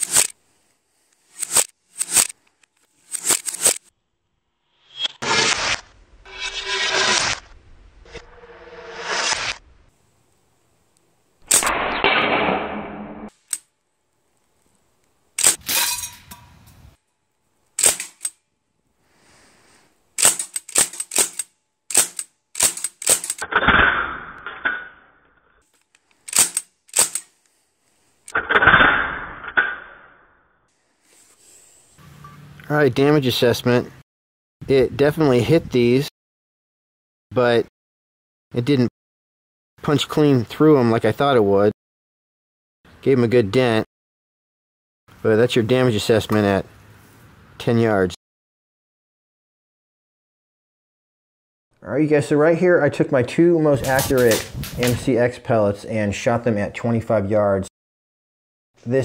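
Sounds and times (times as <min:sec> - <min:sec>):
pellet rifle shots: 0:17.8 - 0:18.3, 0:20.2 - 0:23.7, 0:26.3 - 0:27.3.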